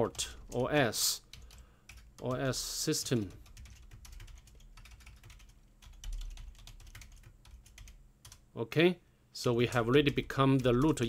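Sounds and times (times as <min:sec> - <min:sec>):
computer keyboard typing: 0:00.0 - 0:02.6, 0:03.2 - 0:08.4, 0:09.6 - 0:11.0.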